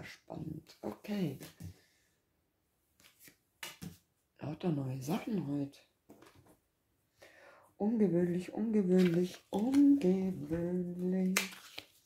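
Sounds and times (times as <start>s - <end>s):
cards swishing and tapping: 3.0s - 4.0s, 8.9s - 12.0s.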